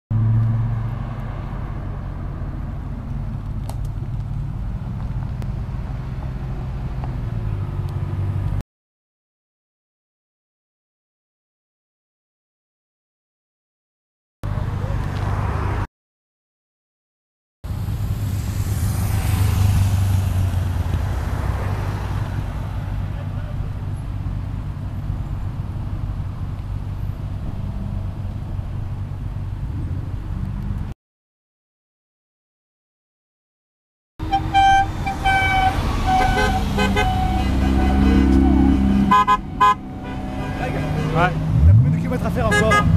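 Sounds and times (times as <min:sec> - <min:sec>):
car engine drone: 0:00.1 - 0:08.6, 0:17.6 - 0:31.0, 0:34.2 - 0:42.9
low engine hum: 0:00.1 - 0:08.6
road noise: 0:00.1 - 0:08.6, 0:14.4 - 0:15.9, 0:17.6 - 0:31.0, 0:34.2 - 0:42.9.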